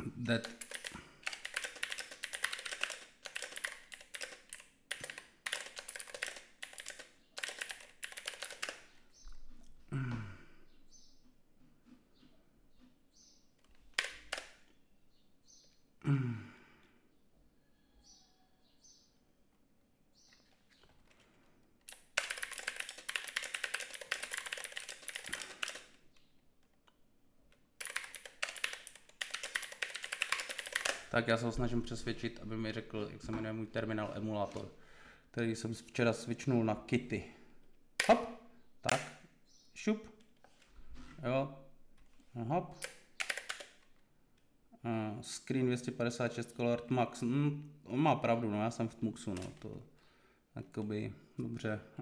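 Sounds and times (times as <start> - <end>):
typing on computer keyboard: 0.4 - 8.9, 13.9 - 14.6, 21.8 - 26.0, 27.8 - 31.1, 42.8 - 43.9.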